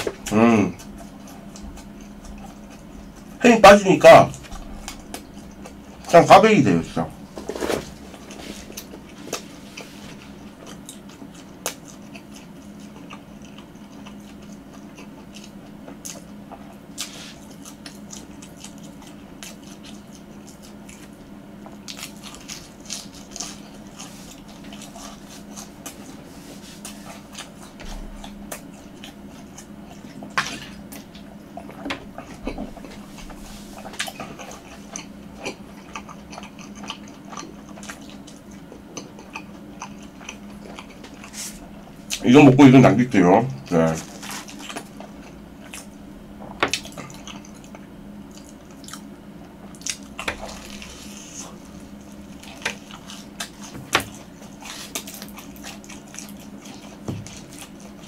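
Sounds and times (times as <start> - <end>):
close-miked chewing: 0.0 - 58.0.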